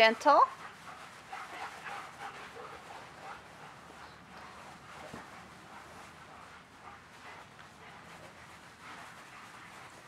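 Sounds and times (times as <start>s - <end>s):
soft dog breaths: 0.0s - 10.0s.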